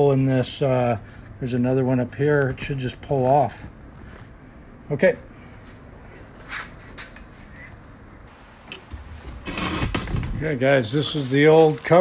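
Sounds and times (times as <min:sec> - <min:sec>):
low knocking and rumbling: 0:08.4 - 0:10.8.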